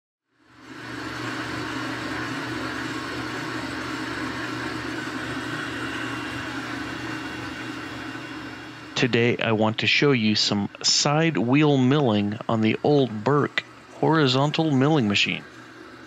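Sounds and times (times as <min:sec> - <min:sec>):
milling machine humming: 0:00.4 - 0:16.0.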